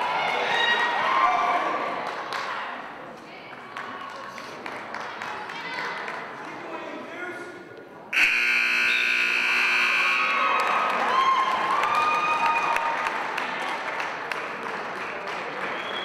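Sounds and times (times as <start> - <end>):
scoreboard buzzer: 8.2 - 10.6
crowd applauding and cheering: 10.0 - 16.0.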